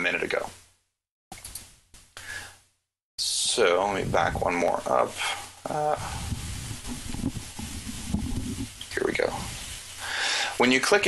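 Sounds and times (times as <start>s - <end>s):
man breathing out sharply: 2.2s - 2.6s, 10.0s - 10.6s.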